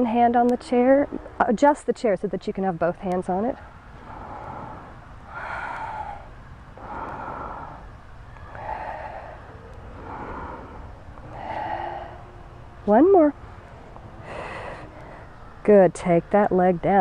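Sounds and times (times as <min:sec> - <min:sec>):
woman breathing out: 0:04.0 - 0:12.4, 0:14.2 - 0:15.3.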